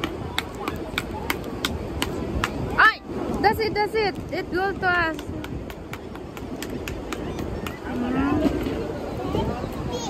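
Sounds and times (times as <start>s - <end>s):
outdoor background rush: 0.0s - 10.0s.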